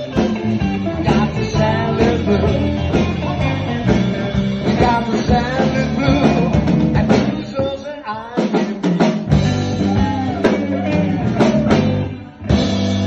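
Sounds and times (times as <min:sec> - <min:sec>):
blues band playing: 0:00.0 - 0:13.0.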